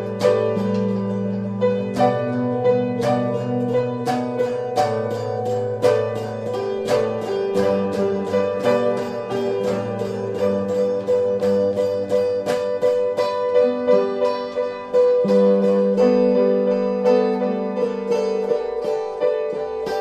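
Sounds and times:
instrumental rock jam: 0.0 - 20.0
run of plucked guitar notes: 0.0 - 20.0.

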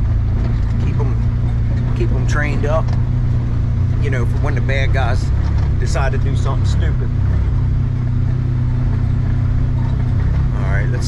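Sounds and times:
vehicle engine low drone: 0.0 - 11.0.

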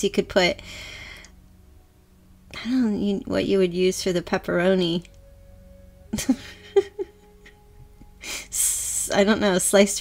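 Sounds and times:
faint steady background tones: 0.0 - 10.0
woman breathing: 0.6 - 1.5.

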